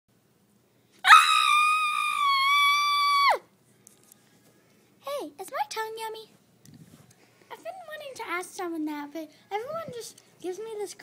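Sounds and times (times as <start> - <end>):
long high-pitched scream: 1.0 - 3.5.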